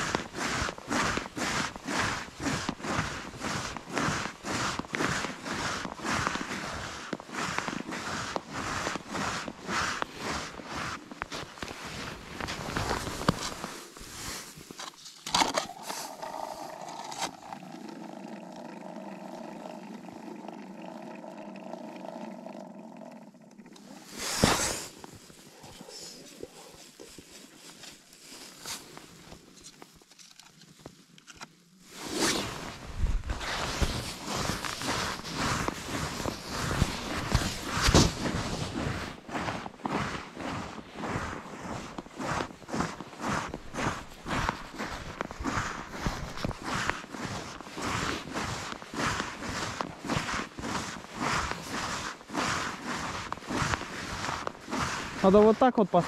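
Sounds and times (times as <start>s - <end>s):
boots crunching on thin ice: 0.0s - 18.4s, 23.8s - 30.0s, 31.8s - 56.0s.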